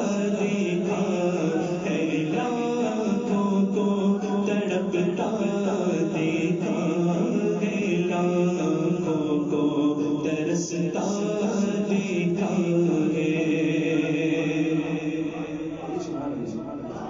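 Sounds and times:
devotional chanting: 0.0 - 17.0.

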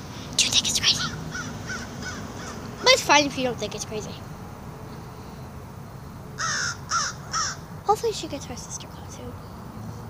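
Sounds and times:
bird calling: 0.0 - 10.0.

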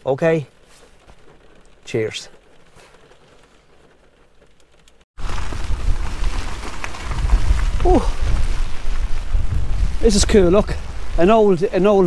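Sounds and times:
heavy rain: 5.2 - 12.0
wind gusting on microphone: 5.2 - 12.0.

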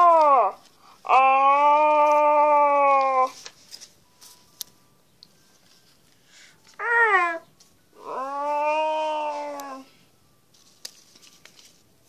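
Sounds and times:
child making monster cries: 0.0 - 3.4, 6.8 - 9.9.

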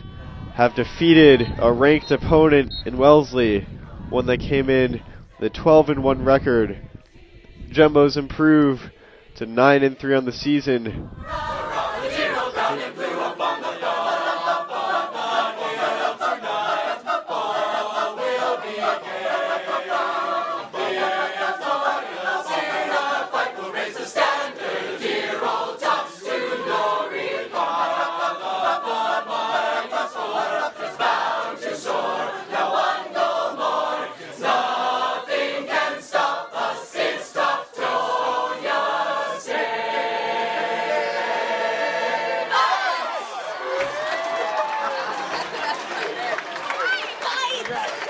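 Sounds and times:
group chanting together: 6.9 - 7.8, 8.8 - 9.8, 10.9 - 44.6.

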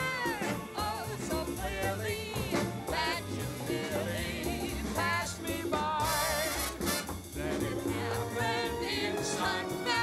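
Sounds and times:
backing band: 0.0 - 10.0
singers with vibrato: 0.0 - 10.0.

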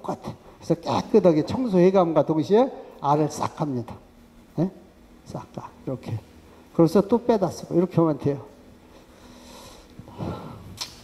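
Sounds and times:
breath on microphone: 8.9 - 10.8
sharp click: 10.8 - 11.0.

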